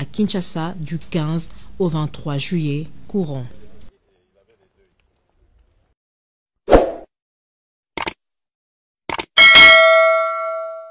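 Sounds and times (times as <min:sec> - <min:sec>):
notification bell ding: 0:09.4 - 0:10.9.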